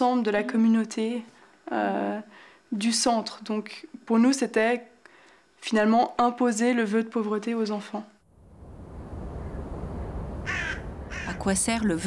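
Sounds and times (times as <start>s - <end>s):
steady low rumble: 8.2s - 12.0s
harsh bird-like call: 10.4s - 11.5s.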